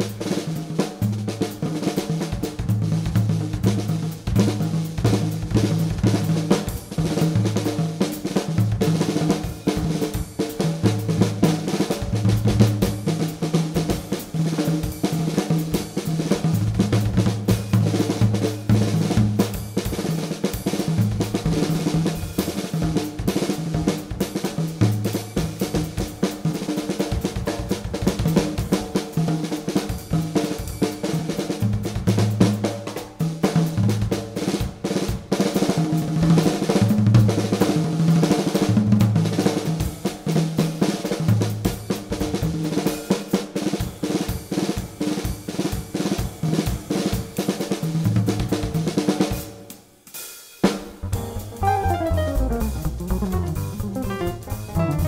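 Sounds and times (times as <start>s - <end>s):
jazz drum kit solo: 0.0s - 55.0s.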